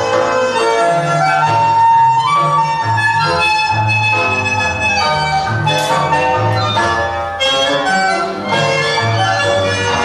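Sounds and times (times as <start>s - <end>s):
tango music with bandoneon and bass: 0.0s - 10.0s.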